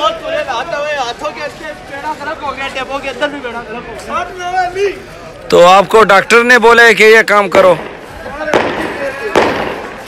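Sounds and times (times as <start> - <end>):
faint voices: 0.0 - 10.0
firecracker bangs: 7.5 - 10.0.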